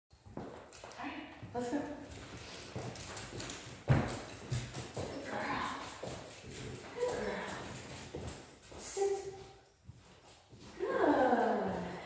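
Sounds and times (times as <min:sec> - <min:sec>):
footsteps on hardwood floor: 0:00.2 - 0:12.0
dog claws clicking on floor: 0:01.9 - 0:10.8.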